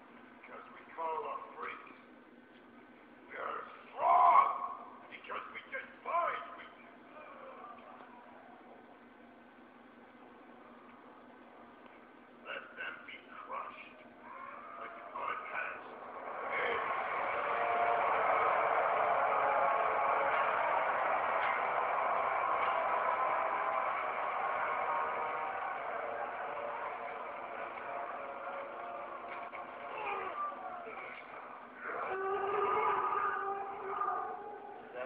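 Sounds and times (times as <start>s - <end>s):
muffled action film soundtrack: 14.2s - 34.2s.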